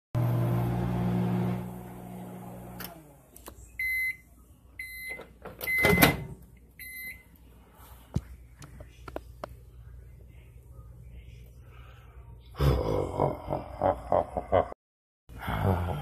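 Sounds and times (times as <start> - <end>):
microwave oven humming: 0.2 - 4.2.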